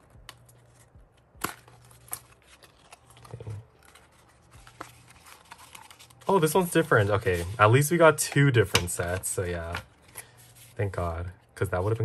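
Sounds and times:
paper and card rustling: 0.0 - 12.0.

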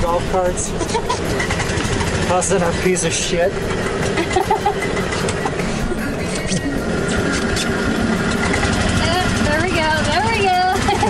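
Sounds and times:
golf cart driving on sand: 0.0 - 11.0.

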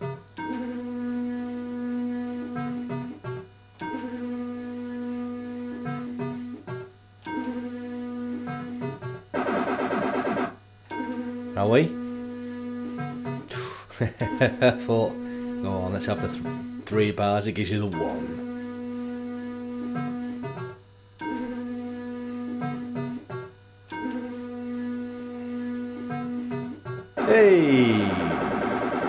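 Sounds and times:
fruit machine electronic tone: 1.9 - 13.4, 14.3 - 17.1, 17.8 - 18.8, 19.4 - 29.0
buzzing electronic jingle: 9.3 - 10.6, 27.2 - 29.0.

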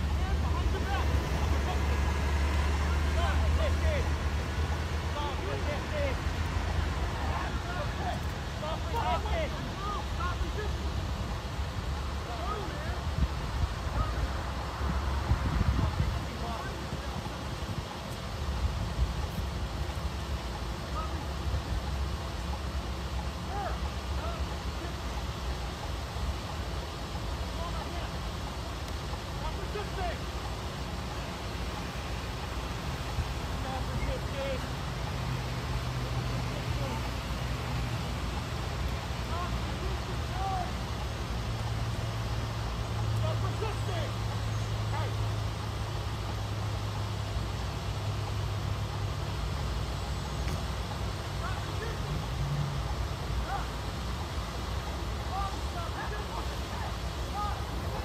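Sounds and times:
faint distant voices: 0.0 - 58.0
road traffic: 0.0 - 58.0
wind rumble: 3.9 - 24.1.

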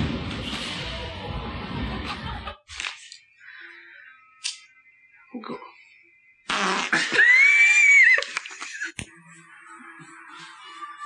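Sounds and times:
loud drawn-out fart: 6.5 - 7.1.

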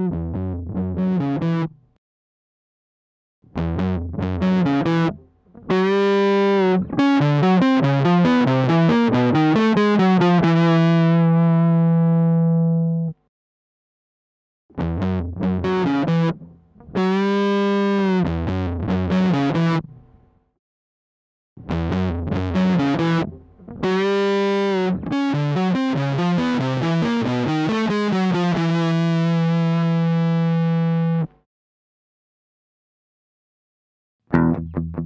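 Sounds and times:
fuzzed electric guitar riff: 3.6 - 13.1, 14.8 - 19.9, 21.6 - 31.3, 34.3 - 35.0.

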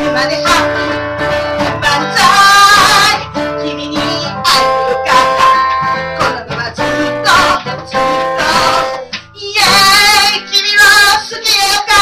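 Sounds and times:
woman singing into a microphone: 0.0 - 12.0.

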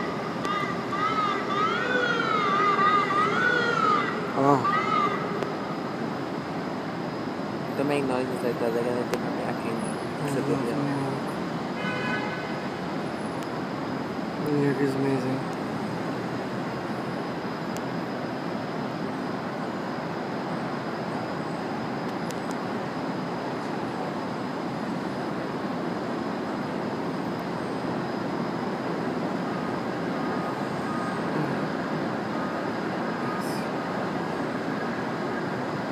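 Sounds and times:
distant street traffic roar: 0.0 - 35.9.

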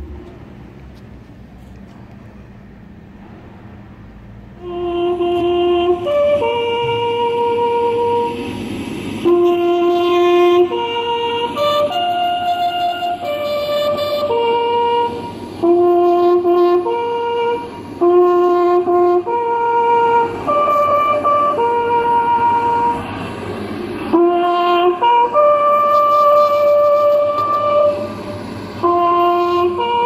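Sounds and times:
bugle long notes: 4.6 - 23.2, 24.0 - 30.0
slow flute melody: 4.6 - 23.4, 24.0 - 30.0.

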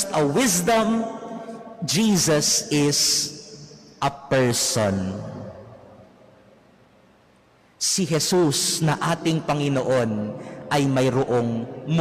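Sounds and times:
man's voice echoing: 0.0 - 6.6, 7.6 - 12.0.

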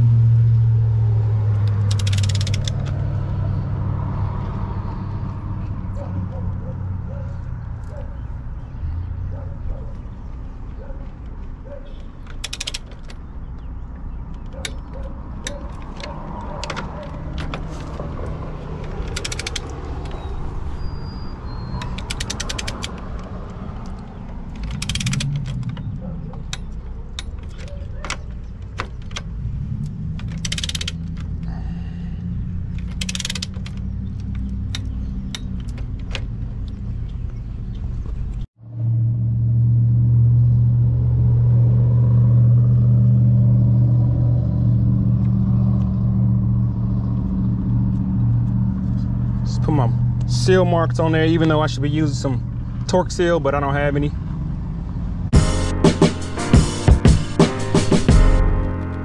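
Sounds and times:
loud low engine hum: 0.0 - 59.0
sharp torque wrench clicks: 1.7 - 3.0, 12.3 - 13.2, 18.9 - 20.1, 21.8 - 23.2, 23.8 - 25.7, 30.2 - 31.3, 32.8 - 33.8
torque wrench ratchet clicks: 1.8 - 2.9, 12.4 - 12.9, 21.8 - 23.0, 24.6 - 25.4, 30.3 - 31.2, 32.8 - 33.8.

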